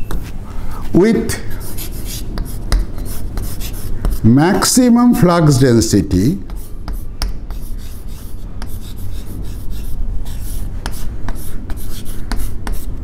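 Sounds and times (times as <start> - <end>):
chalk writing on blackboard: 1.4 - 4.3, 6.4 - 13.0.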